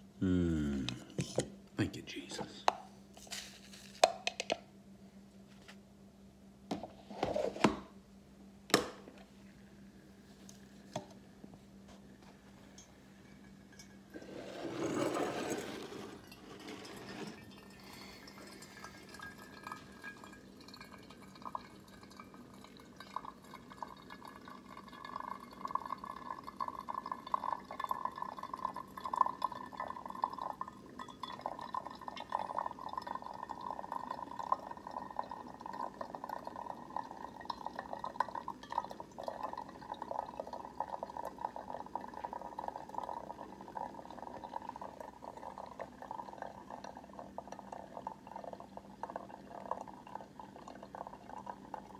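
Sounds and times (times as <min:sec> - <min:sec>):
coffee maker brewing: 0:11.9 - 0:51.9.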